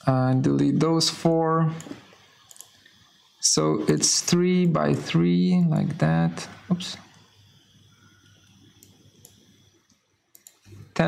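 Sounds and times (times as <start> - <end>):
mouse and keyboard clicks: 10.4 - 10.7.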